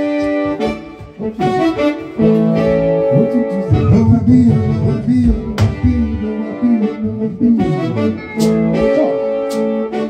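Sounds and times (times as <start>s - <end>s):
live band playing: 0.0s - 10.0s.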